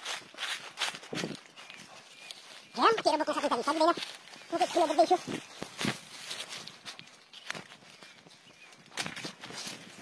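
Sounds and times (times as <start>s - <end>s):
footsteps through dry leaves: 0.0s - 10.0s.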